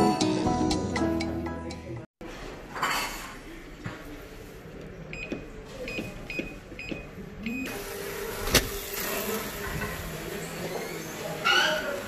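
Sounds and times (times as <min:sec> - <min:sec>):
keypad beeps: 0:05.1 - 0:07.8.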